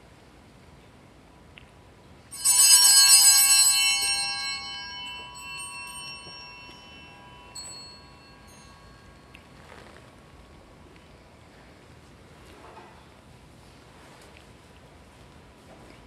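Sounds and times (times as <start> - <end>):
altar bells ringing: 2.3 - 9.8
small clink: 2.4 - 10.2.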